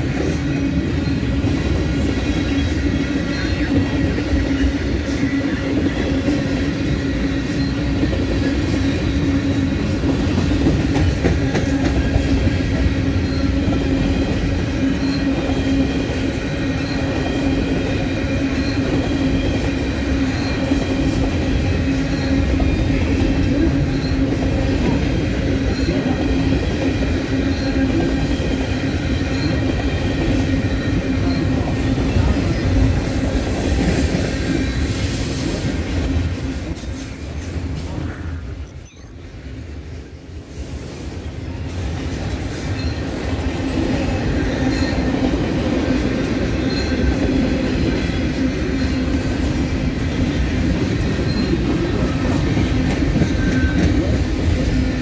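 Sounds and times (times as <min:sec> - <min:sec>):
train wheels rumbling on rail: 0:00.0 - 0:55.0.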